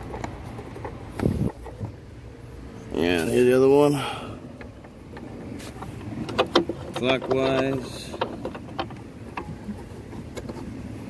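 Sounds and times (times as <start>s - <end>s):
steady low background noise: 0.0s - 11.0s.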